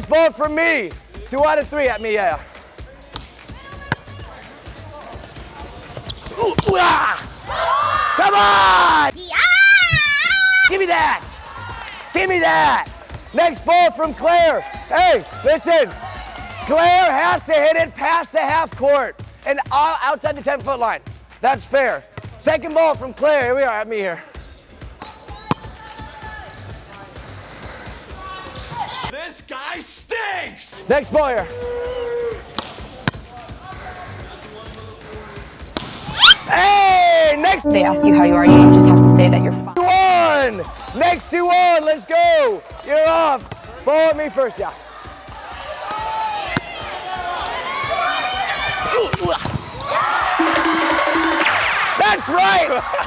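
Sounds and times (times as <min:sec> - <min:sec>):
background music: 0:37.4 - 0:40.1, 0:50.4 - 0:51.9.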